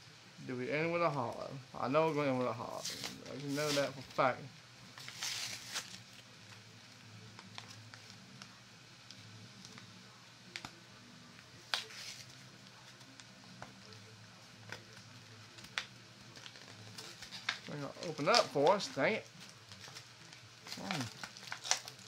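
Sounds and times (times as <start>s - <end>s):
foil wrapper crinkling: 2.1s - 22.0s.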